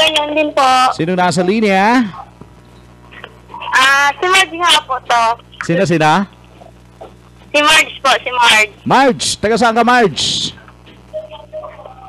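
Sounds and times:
caller's voice over telephone: 0.0s - 0.9s, 3.6s - 6.0s, 7.6s - 12.0s
low electrical hum: 0.0s - 12.0s.

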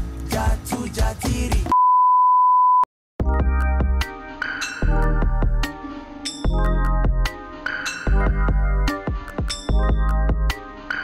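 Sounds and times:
music with singing voice: 0.0s - 1.8s
censor bleep: 1.7s - 2.9s.

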